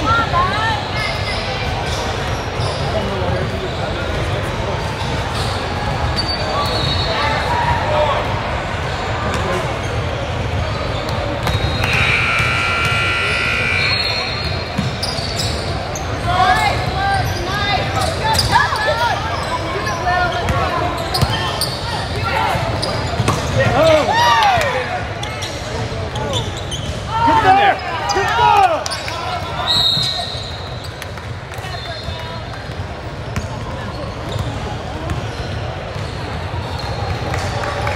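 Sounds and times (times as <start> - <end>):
sneakers squeaking on hardwood: 10.7 - 22.0, 22.6 - 24.0, 25.4 - 27.1
basketball bouncing: 14.7 - 15.0, 23.1 - 23.6.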